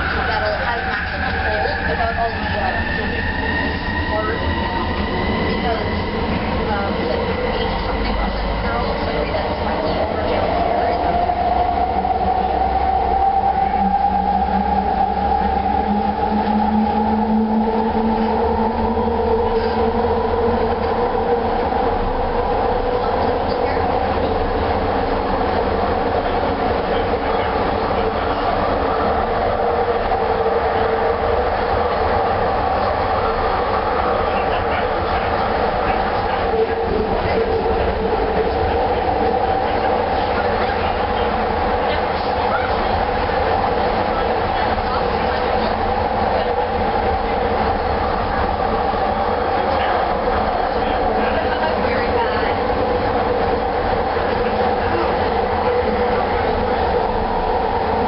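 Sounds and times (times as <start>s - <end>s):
train electric hum: 0.0s - 58.0s
train running rumble: 0.0s - 58.0s.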